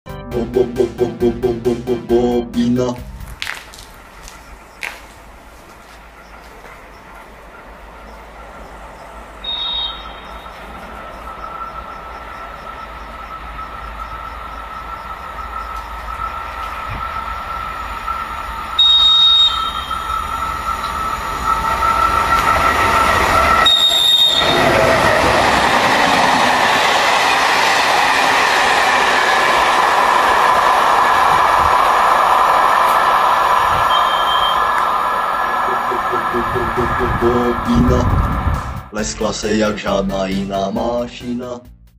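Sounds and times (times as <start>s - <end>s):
electric train passing: 0.2s - 41.6s
rolling noise of train coaches: 0.3s - 41.5s
high-pitched train whistle blasts: 9.4s - 25.4s, 33.7s - 38.2s.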